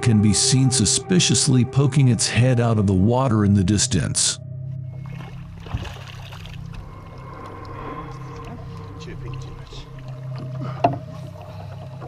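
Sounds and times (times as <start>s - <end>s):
steady low drone: 0.0s - 12.0s
water splashing: 4.9s - 12.0s.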